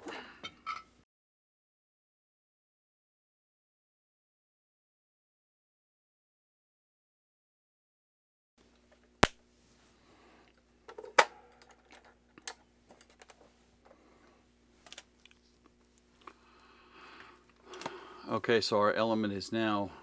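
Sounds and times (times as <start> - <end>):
faint steady hum: 8.6 - 20.0.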